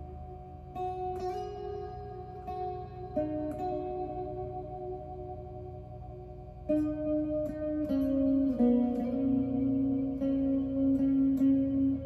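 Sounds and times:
electric guitar slow melody: 0.0s - 12.0s.

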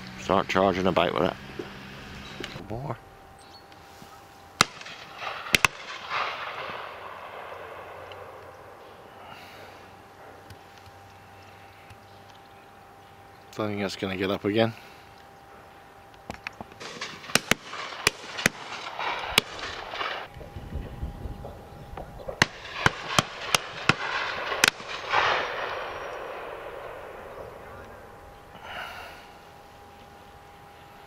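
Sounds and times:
rolling echo of gunshots: 4.6s - 8.8s, 16.8s - 20.3s, 22.2s - 28.2s
shotguns firing: 4.6s - 8.8s, 16.8s - 20.3s, 22.2s - 28.8s.

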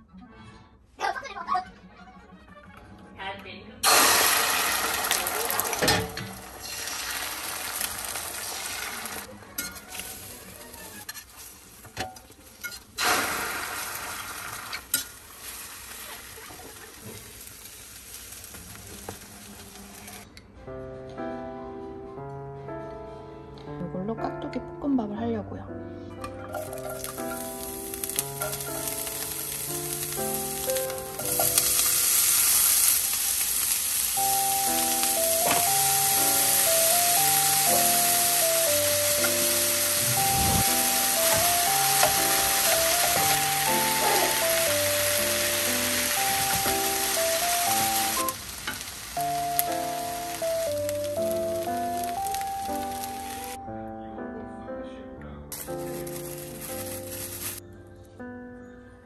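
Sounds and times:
background music: 0.0s - 11.1s, 20.4s - 32.9s, 33.5s - 59.0s
food sizzling in frying pan: 3.8s - 20.2s, 26.6s - 53.6s, 55.6s - 57.6s.

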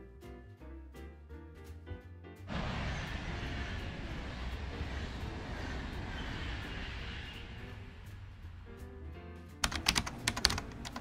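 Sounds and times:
train wheels rumbling on rails: 2.5s - 8.9s.

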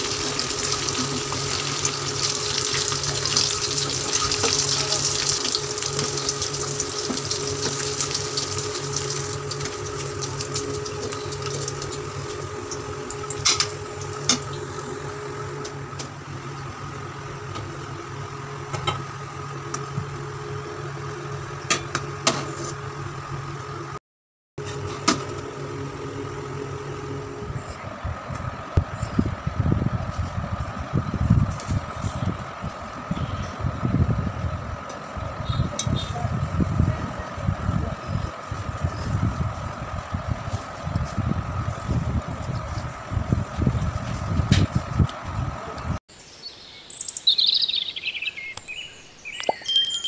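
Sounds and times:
birds chirping: 46.1s - 50.0s
short high chime: 49.6s - 50.0s.

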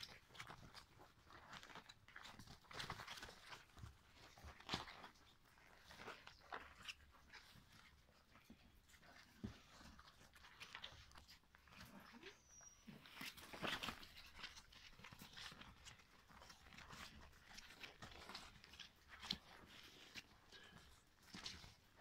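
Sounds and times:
paws scrabbling on fabric: 0.0s - 22.0s
puppies whimpering: 11.6s - 13.6s.

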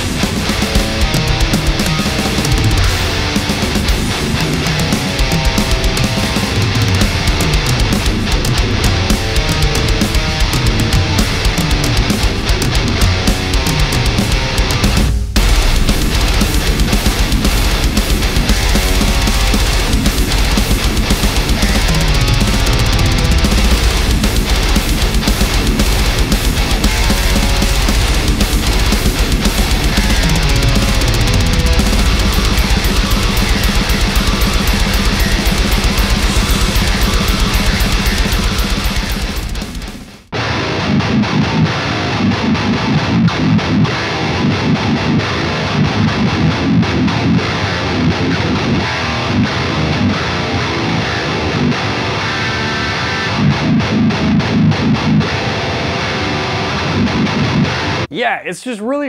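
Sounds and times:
heavy metal song: 0.0s - 58.2s
distorted guitar chugging riffs: 0.0s - 59.0s.

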